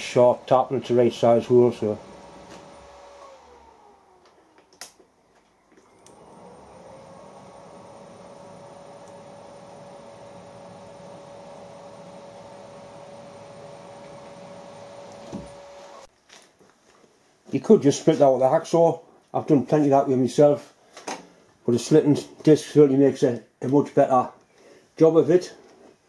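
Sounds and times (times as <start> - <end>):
milling machine motor whine: 0.0 - 4.9, 5.6 - 16.1.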